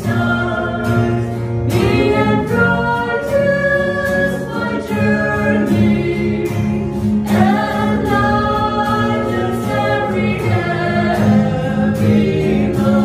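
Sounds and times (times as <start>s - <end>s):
acoustic guitar strumming: 0.0s - 13.0s
group singing a hymn: 0.0s - 13.0s.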